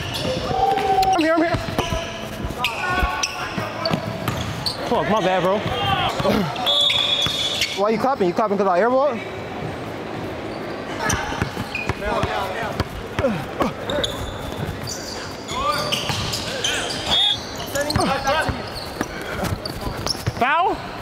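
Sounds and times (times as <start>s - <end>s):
players calling out: 0.0s - 9.4s, 10.4s - 21.0s.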